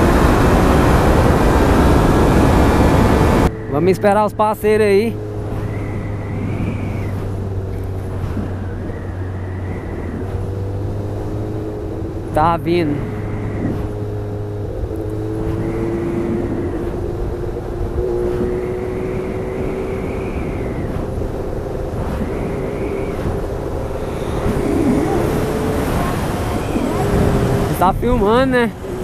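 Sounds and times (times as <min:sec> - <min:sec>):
motorcycle engine cruising: 0:00.0 - 0:29.0
second motorcycle passing alongside: 0:00.0 - 0:29.0
wind rush on microphone: 0:00.0 - 0:29.0.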